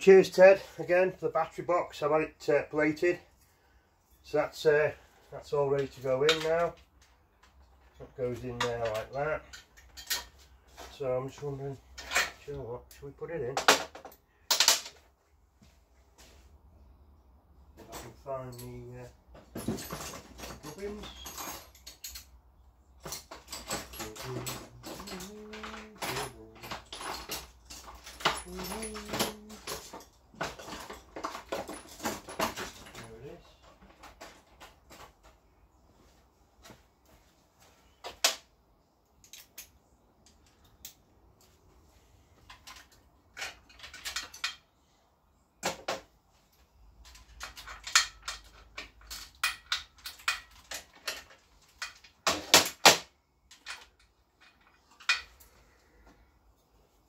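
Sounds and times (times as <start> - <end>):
metal tools clinking on workbench: 5.8 - 11.0, 11.9 - 12.5, 17.8 - 22.4, 23.0 - 35.4, 42.4 - 44.7, 47.0 - 52.9.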